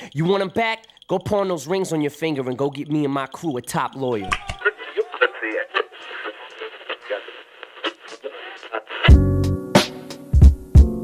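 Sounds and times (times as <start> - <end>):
muffled voices over radio: 3.8 - 9.1.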